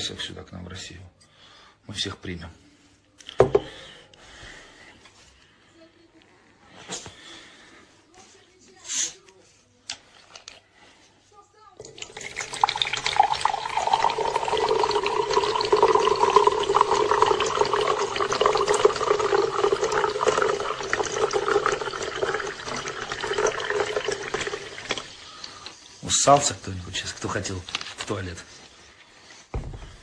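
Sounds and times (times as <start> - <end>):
tap water pouring into sink: 11.8 - 25.7.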